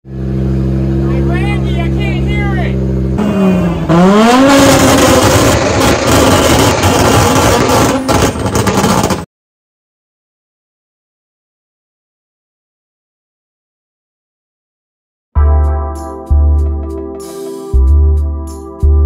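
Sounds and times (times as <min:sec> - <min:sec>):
rally car engine revving: 0:02.8 - 0:09.2.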